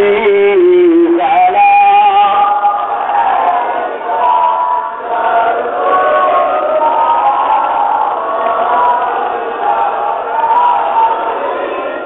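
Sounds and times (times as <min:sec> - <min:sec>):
person singing devotional melody: 0:00.0 - 0:03.0.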